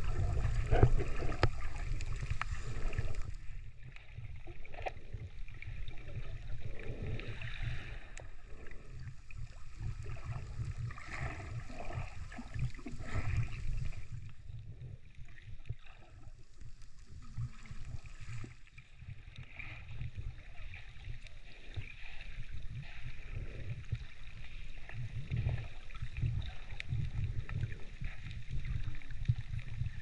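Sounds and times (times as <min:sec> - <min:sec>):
underwater water sloshing: 0:00.0 - 0:30.0
water gurgling: 0:00.0 - 0:30.0.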